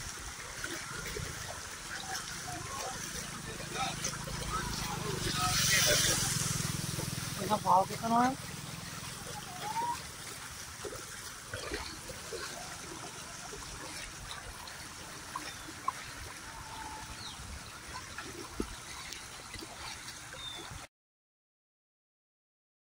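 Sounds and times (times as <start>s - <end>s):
floodwater running and trickling: 0.0s - 20.9s.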